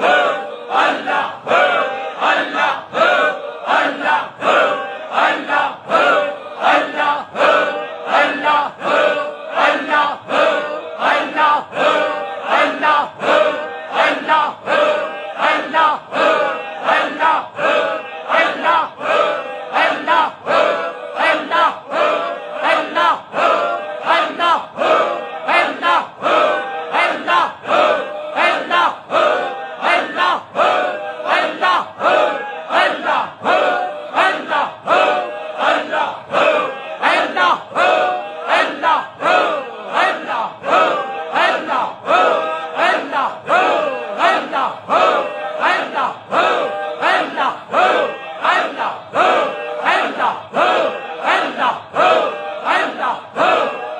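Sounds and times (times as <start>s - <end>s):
congregation chanting rhythmically: 0.0s - 53.9s.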